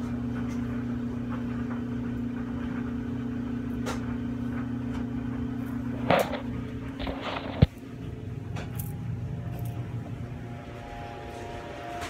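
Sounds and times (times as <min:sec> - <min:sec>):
low steady hum: 0:00.0 - 0:12.0
phone rustling: 0:06.0 - 0:07.7.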